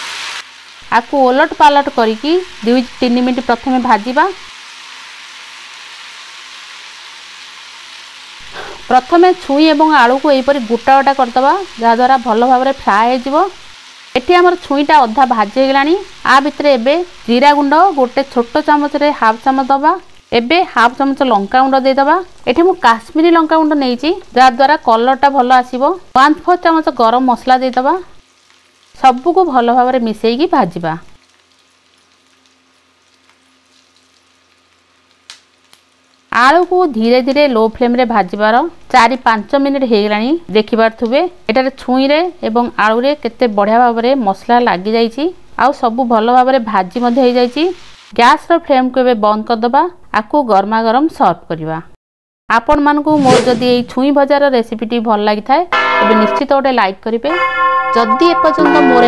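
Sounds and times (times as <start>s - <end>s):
vegetables sizzling in oil: 0.0s - 48.7s.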